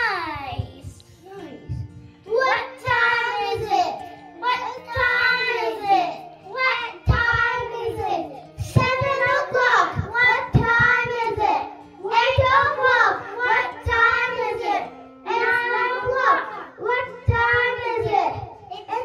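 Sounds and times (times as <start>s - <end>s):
music accompaniment: 0.0s - 19.0s
children singing: 2.3s - 19.0s.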